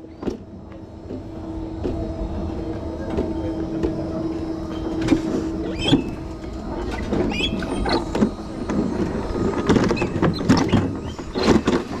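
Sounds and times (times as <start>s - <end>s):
sled wheels rumbling on metal track: 0.0s - 12.0s
steady hum: 0.0s - 12.0s.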